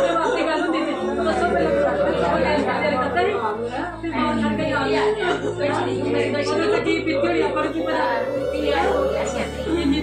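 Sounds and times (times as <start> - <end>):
women speaking: 0.0 - 10.0.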